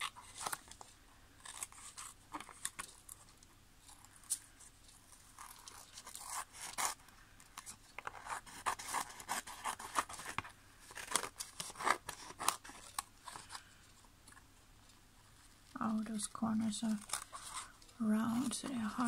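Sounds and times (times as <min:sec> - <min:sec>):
scissors snipping paper: 0:11.0 - 0:13.1.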